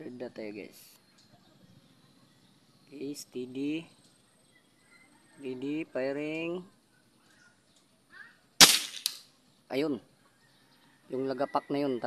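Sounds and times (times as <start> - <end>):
air rifle shot crack: 8.6 - 9.2
pellet striking a can: 8.6 - 9.2.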